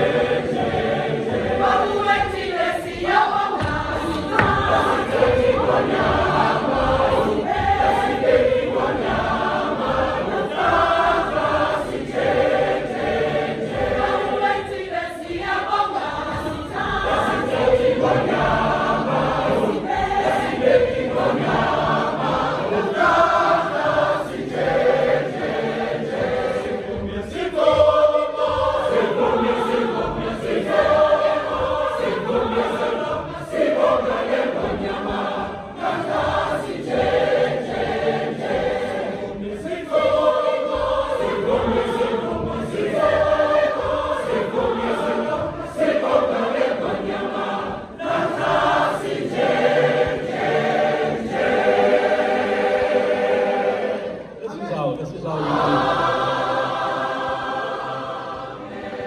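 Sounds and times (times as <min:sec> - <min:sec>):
choir singing gospel: 0:00.0 - 0:59.0.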